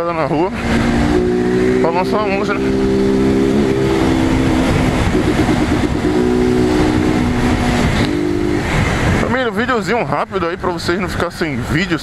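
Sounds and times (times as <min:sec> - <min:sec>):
wind and road noise: 0:00.0 - 0:12.0
motorcycle engine running: 0:00.2 - 0:09.2.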